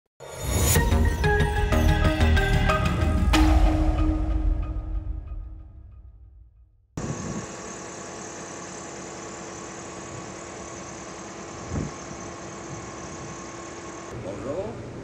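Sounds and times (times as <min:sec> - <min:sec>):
music: 0:00.2 - 0:06.9
bus engine idling: 0:07.0 - 0:15.0.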